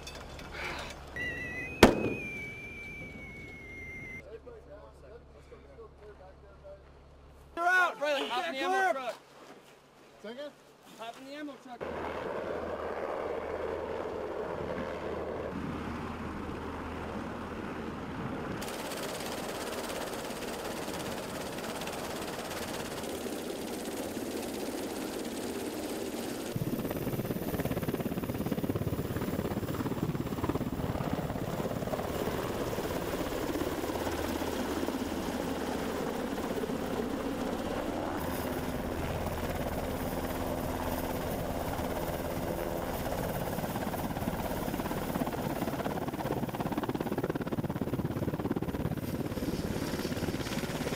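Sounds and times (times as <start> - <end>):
helicopter rotor and turbine: 0.1 - 4.2, 11.8 - 50.9.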